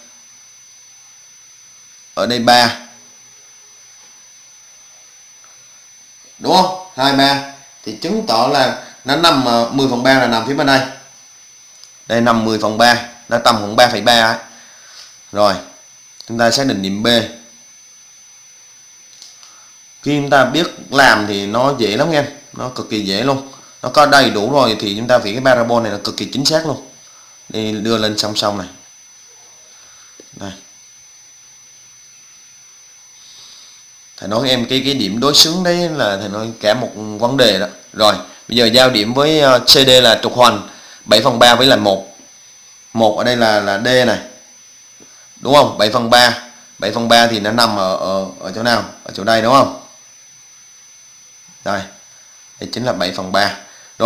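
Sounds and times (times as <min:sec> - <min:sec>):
faint high-pitched whine: 0:00.0 - 0:54.0
steady low hiss: 0:00.0 - 0:54.0.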